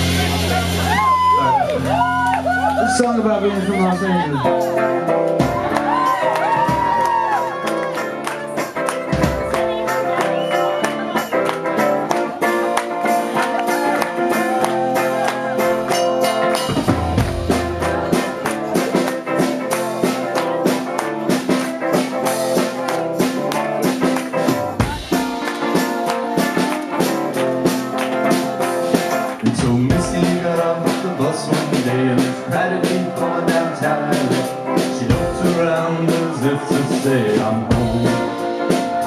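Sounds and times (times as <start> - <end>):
drums: 0.0 - 39.0
electric guitar: 0.0 - 39.0.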